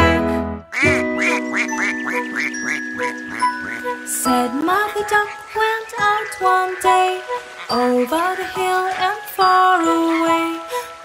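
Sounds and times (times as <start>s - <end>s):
held musical chord: 0.0s - 5.4s.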